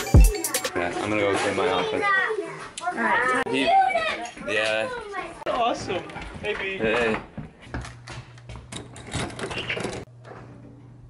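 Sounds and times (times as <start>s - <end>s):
young children chattering: 0.5s - 5.6s.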